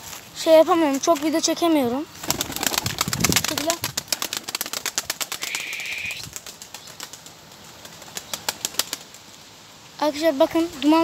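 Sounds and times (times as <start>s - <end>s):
pigeon wings flapping: 2.2s - 9.2s.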